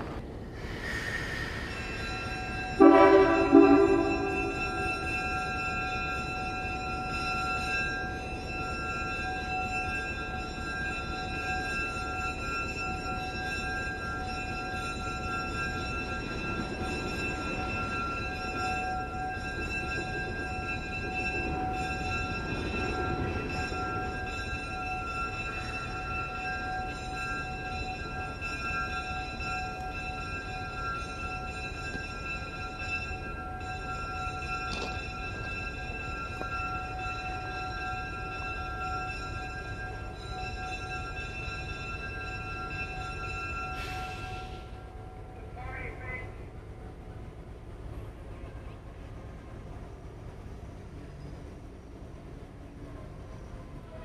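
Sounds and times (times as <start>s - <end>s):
locomotive engine rumble: 0.0s - 54.0s.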